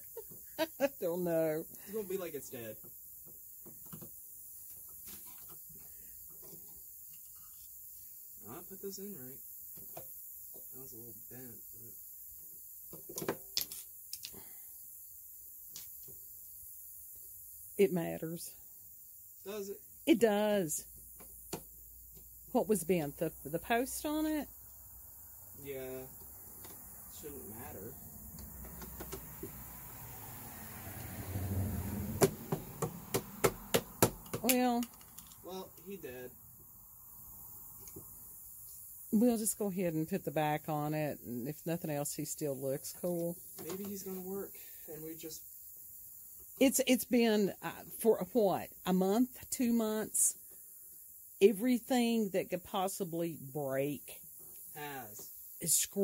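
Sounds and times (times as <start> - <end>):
faint low hum: 10.7 - 12.0, 26.9 - 28.5
knocks on hollow plastic: 32.2 - 34.4.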